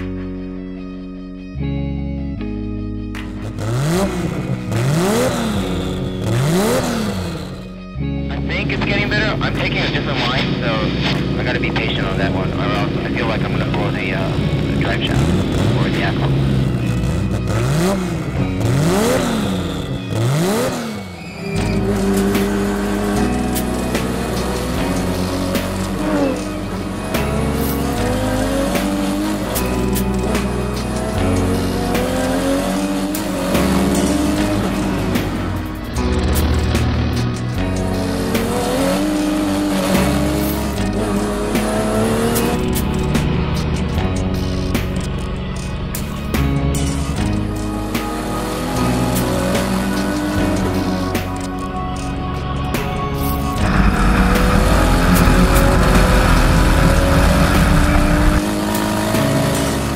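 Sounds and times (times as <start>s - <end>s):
background music: 0.0s - 59.9s
race car engine revving: 2.4s - 59.9s.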